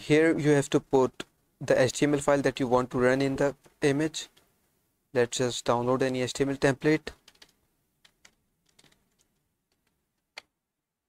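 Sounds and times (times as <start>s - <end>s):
keyboard typing: 7.1s - 10.5s.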